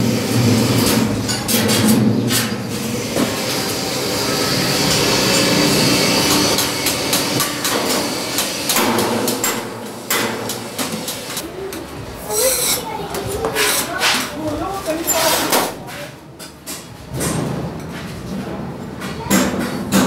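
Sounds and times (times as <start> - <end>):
steady background hum: 0.0 - 20.0
faint voices: 11.4 - 16.4.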